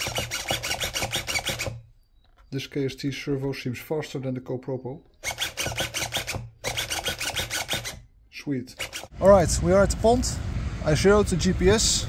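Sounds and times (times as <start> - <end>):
servo whirring in rasping bursts: 0.0 - 1.8, 5.2 - 8.0, 8.7 - 9.2.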